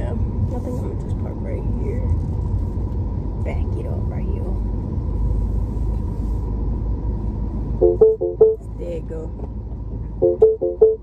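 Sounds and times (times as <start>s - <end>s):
low car cabin rumble: 0.0s - 11.0s
car warning chime beeps: 7.8s - 8.6s, 10.2s - 11.0s.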